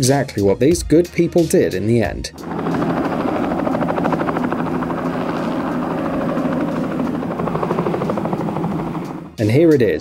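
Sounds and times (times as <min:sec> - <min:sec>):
helicopter engine hum: 0:02.4 - 0:09.4
helicopter rotor beat: 0:02.4 - 0:09.5.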